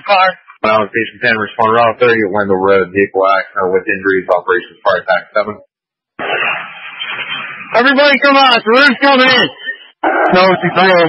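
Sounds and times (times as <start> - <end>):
radio hiss: 6.2 - 11.0
man's voice over radio: 7.7 - 11.0.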